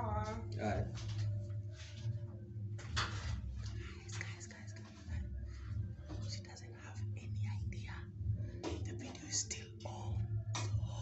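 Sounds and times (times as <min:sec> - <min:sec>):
steady low hum: 0:00.0 - 0:11.0
man whispering: 0:03.8 - 0:11.0.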